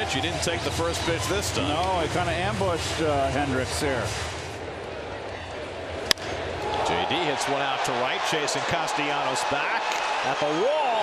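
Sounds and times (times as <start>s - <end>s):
crowd hum: 0.0s - 9.4s
wooden bat cracking on ball: 6.0s - 6.8s.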